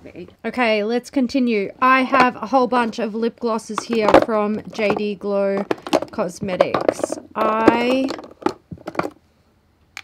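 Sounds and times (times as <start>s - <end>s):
plastic tubes clicking: 3.8s - 9.2s.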